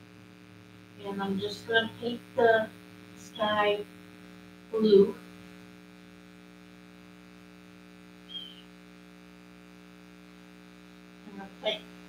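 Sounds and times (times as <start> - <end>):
low electrical hum: 0.0 - 12.0
short high-pitched chirp: 8.3 - 8.7.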